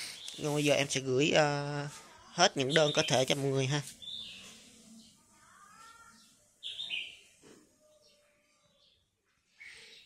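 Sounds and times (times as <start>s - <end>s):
faint bird chirps: 4.0s - 10.0s.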